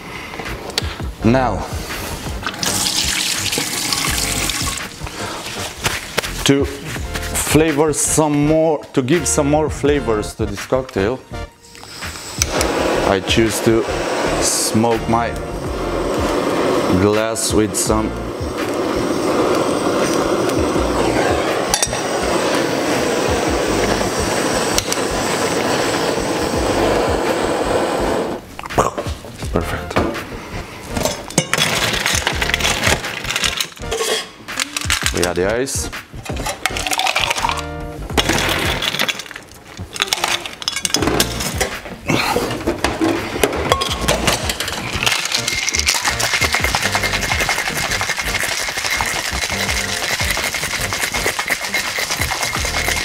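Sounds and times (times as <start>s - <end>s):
faint background music: 0.1s - 53.0s
kitchen torch hissing: 1.5s - 7.0s, 11.6s - 28.6s, 42.4s - 53.0s
water running from tap: 2.4s - 5.2s, 45.3s - 53.0s.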